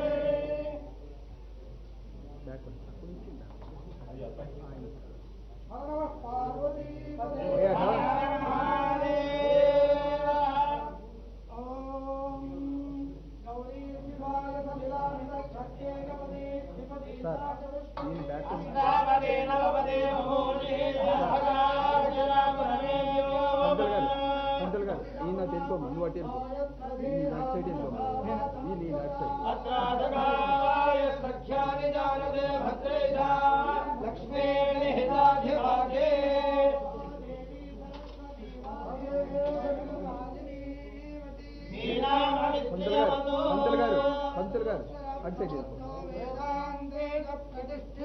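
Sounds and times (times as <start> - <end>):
men chanting in long held notes: 0.0 - 0.8, 5.8 - 13.1, 18.5 - 25.7, 26.7 - 45.3.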